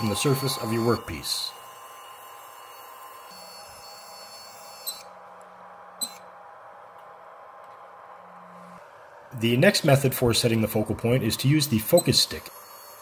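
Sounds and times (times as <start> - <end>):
held tones: 0.0 - 5.2
faint steady hum: 0.0 - 13.0.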